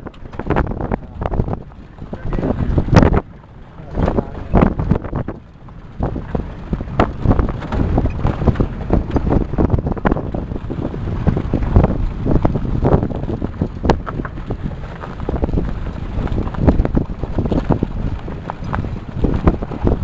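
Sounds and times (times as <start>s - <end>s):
knocks and rattles: 0.0s - 20.0s
vehicle rumbling on gravel: 0.0s - 20.0s
wind buffeting microphone: 0.0s - 20.0s.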